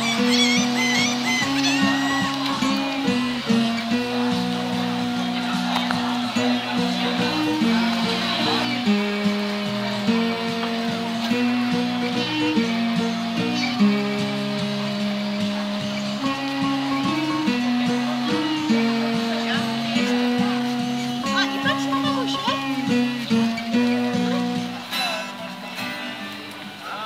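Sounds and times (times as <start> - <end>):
instrumental background music: 0.0 - 26.8.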